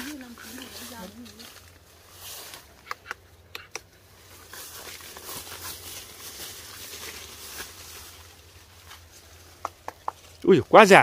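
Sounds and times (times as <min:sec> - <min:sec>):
leaves and branches rustling: 0:00.0 - 0:11.0
sharp snaps: 0:02.6 - 0:04.0, 0:09.6 - 0:10.4.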